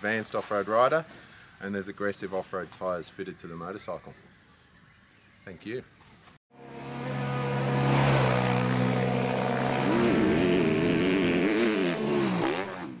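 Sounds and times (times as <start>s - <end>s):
engine-like drone: 6.5s - 13.0s.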